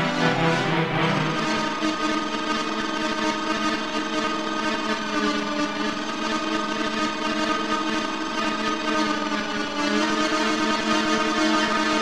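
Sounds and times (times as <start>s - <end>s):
synthesized string drone: 0.0s - 4.5s.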